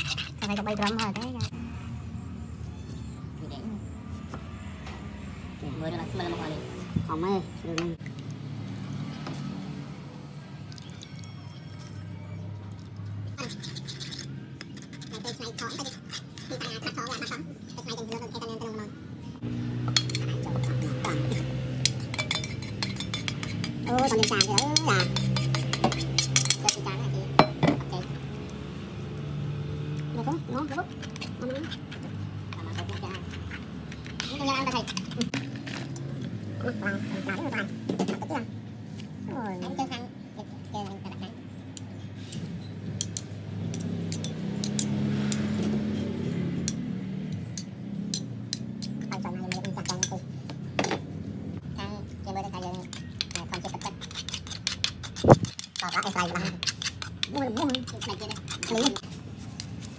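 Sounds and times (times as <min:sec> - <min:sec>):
metal spoon scraping bowl: 0:00.0 - 0:01.8, 0:10.8 - 0:18.8, 0:19.8 - 0:28.2, 0:30.2 - 0:38.3, 0:40.8 - 0:50.4, 0:52.4 - 0:59.9
metal spoon clinking on bowl: 0:19.9 - 0:27.9, 0:43.0 - 0:50.3.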